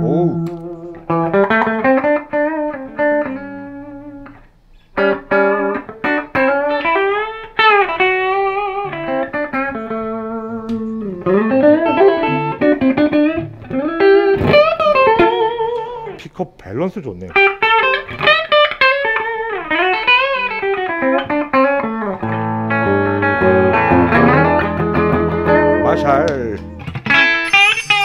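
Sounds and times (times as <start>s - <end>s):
clean electric guitar playing: 0.0s - 16.2s, 17.3s - 28.0s.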